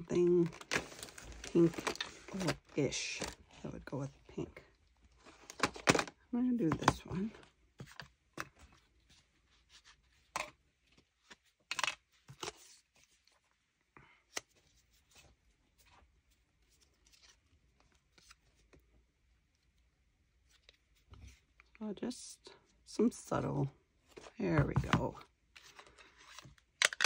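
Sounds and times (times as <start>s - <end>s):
paper rustling: 0.2s - 3.6s.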